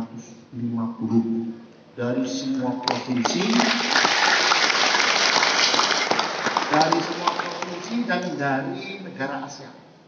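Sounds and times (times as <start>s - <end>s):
audience applause: 3.1s - 8.3s.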